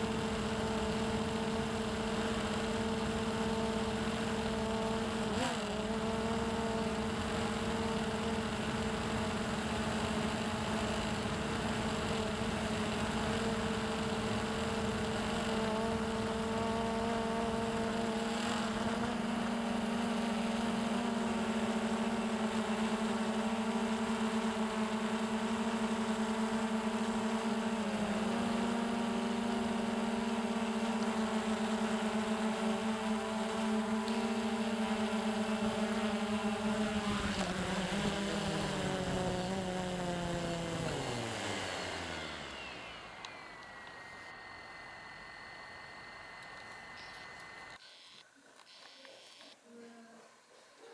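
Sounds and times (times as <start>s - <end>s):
quadcopter motors humming: 0.0s - 49.6s.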